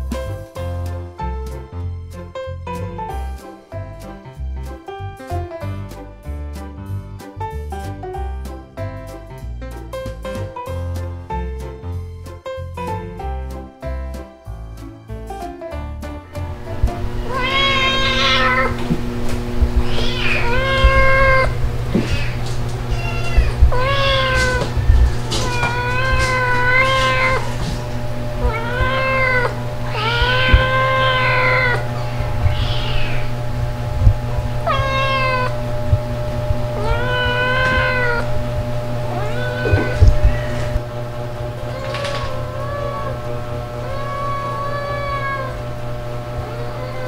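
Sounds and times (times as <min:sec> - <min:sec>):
cat meowing loudly: 0:17.2 - 0:18.8, 0:19.8 - 0:27.6, 0:28.4 - 0:33.4, 0:34.6 - 0:35.6, 0:36.8 - 0:38.3, 0:39.1 - 0:40.8, 0:41.6 - 0:45.6, 0:46.4 - 0:47.0.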